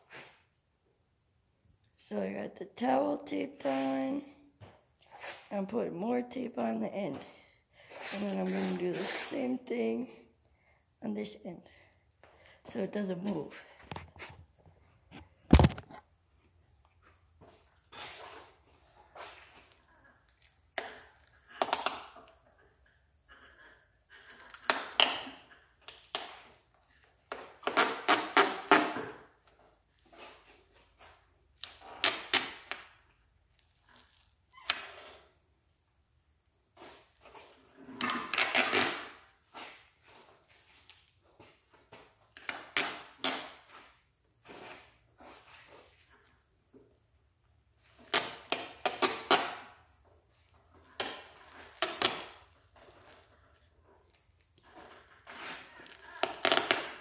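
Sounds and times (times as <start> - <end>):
duct tape ripping off roll: 19.2 - 22.3, 24.2 - 26.6, 27.3 - 29.2, 31.6 - 33.0, 36.8 - 41.1, 42.3 - 43.9, 47.8 - 49.8, 50.9 - 53.4, 54.6 - 57.0.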